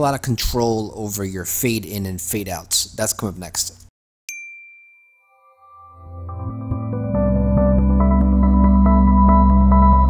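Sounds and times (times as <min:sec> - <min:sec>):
intro music with soft tones: 0:04.9 - 0:10.0.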